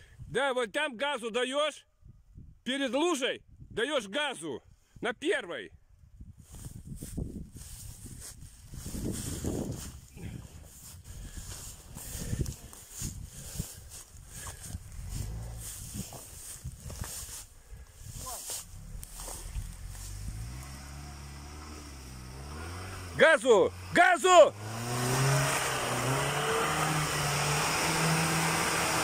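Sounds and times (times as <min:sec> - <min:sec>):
rustling and footfalls in grass: 0:06.5 - 0:21.0
distant quad bike engine: 0:10.2 - 0:17.4, 0:18.4 - 0:29.0.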